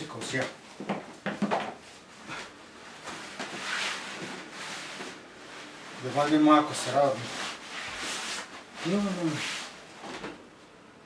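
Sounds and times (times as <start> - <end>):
clothing and bedding rustling: 1.7 - 10.8.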